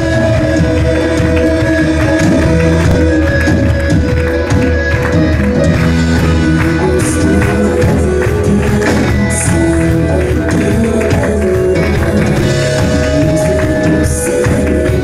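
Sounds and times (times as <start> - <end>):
worship band playing: 0.0 - 15.0.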